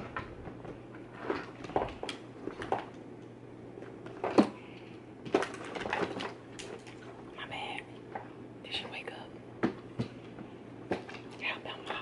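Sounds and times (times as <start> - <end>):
woman whispering: 7.4 - 7.9, 8.7 - 9.3, 11.4 - 12.0.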